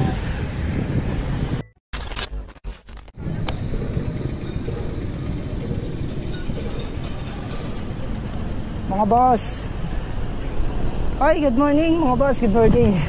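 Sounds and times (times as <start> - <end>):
wind rumbling on microphone: 0.0 - 1.8, 3.2 - 9.0, 9.7 - 13.0
tyre and road noise: 0.0 - 13.0.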